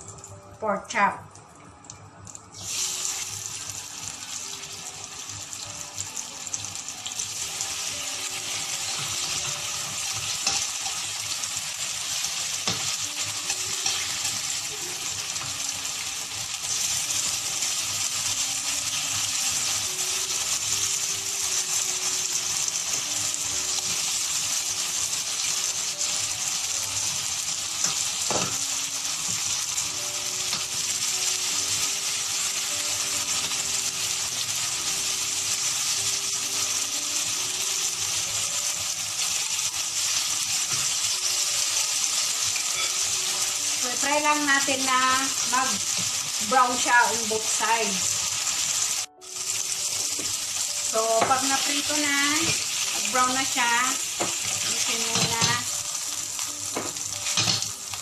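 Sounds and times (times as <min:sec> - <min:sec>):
meat sizzling in a frying pan: 0:02.2 - 0:58.0.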